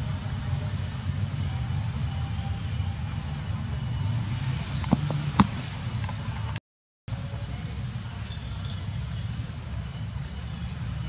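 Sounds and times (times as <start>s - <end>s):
low outdoor rumble: 0.0s - 11.0s.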